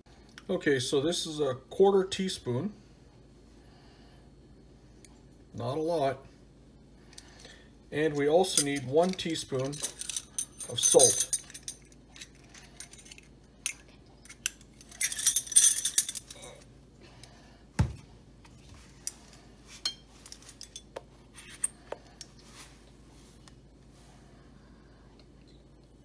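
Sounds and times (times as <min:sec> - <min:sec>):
metal measuring spoons clinking: 0:08.5 - 0:16.4.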